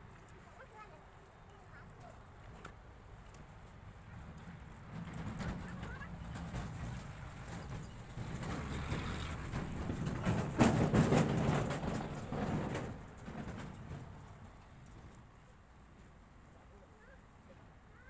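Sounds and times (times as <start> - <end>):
vehicle passing by: 5.0 - 12.8.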